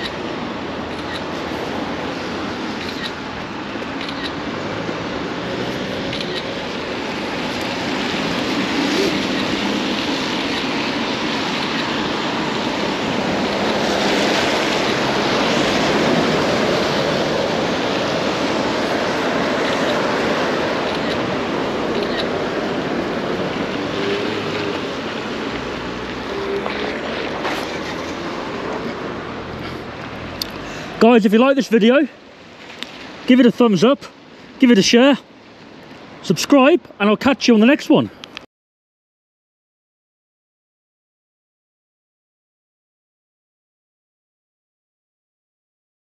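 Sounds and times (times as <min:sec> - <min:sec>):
tyres hissing on wet road: 0:00.0 - 0:38.4.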